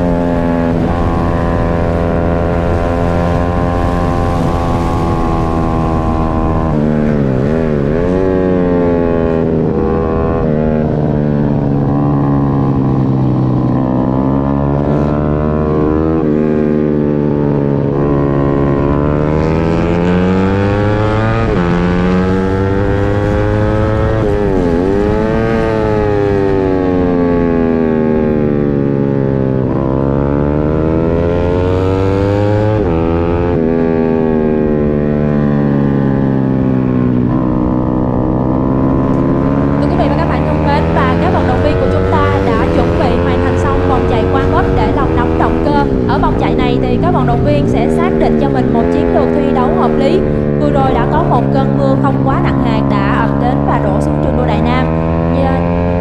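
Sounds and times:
motorcycle engine revving: 0.0s - 56.0s
wind buffeting microphone: 0.0s - 56.0s.

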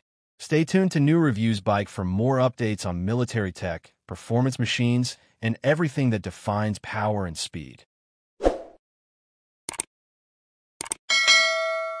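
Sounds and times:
double mouse click: 9.7s - 9.9s
bell ding: 11.1s - 12.0s.

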